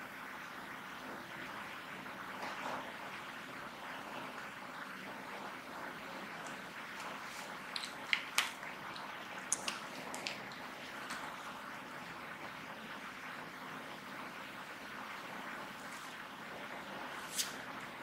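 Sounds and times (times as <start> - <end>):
low hiss of room noise: 0.0 - 18.0.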